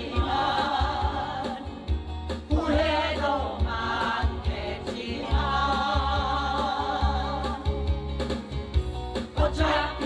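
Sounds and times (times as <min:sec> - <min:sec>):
group singing into microphones: 0:00.0 - 0:08.1, 0:09.2 - 0:10.0
backing track with pulsing bass: 0:00.0 - 0:10.0.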